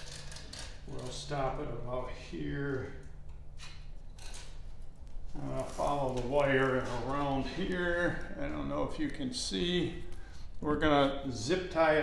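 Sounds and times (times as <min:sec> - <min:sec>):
electrical wire ticks and rustles: 0:00.0 - 0:11.9
low steady hum: 0:00.0 - 0:12.0.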